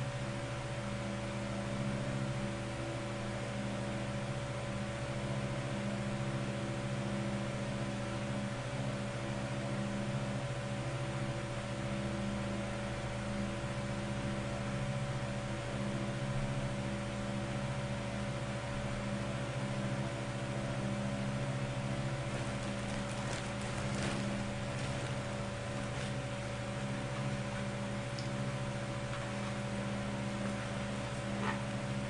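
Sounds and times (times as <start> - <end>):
electrical hum with fixed tones: 0.0 - 32.0.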